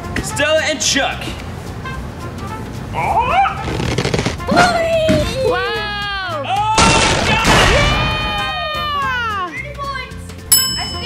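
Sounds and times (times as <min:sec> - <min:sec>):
voices crying out together: 0:05.5 - 0:09.5.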